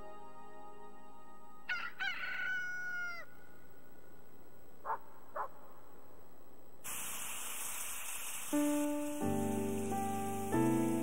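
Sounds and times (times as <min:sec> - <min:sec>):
rooster crowing: 0:01.6 - 0:03.6
sausages sizzling in a frying pan: 0:06.9 - 0:11.0.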